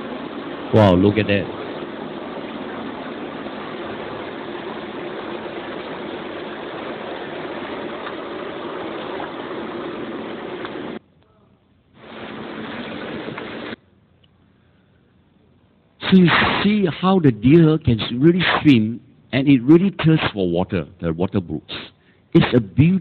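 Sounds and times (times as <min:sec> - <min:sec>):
rushing noise with low hum: 0:00.0 - 0:11.0, 0:12.0 - 0:13.8.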